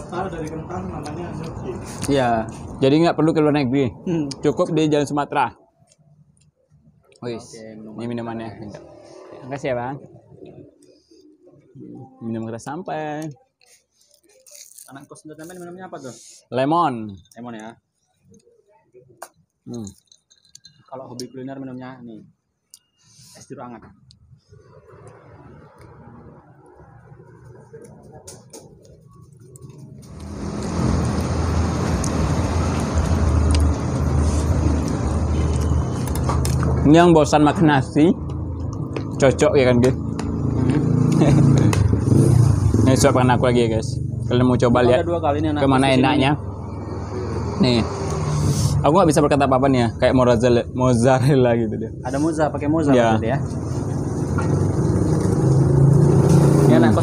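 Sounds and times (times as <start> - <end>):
vehicle engine rumbling: 0.0 - 7.0, 23.9 - 57.0.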